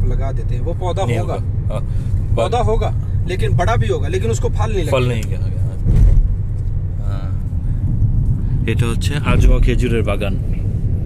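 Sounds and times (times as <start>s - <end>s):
man talking: 0.0s - 5.9s, 8.7s - 10.4s
car engine and tyres drone: 0.0s - 11.0s
car bump: 5.2s - 6.8s.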